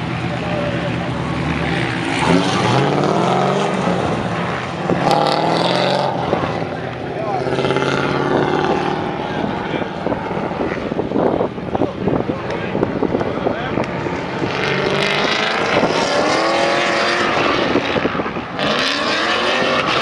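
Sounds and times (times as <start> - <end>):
car engine revving hard: 0.0 - 11.5, 12.1 - 20.0.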